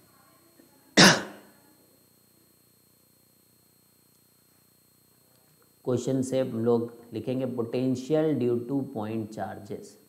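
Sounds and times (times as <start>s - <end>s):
man coughing: 1.0s - 1.4s.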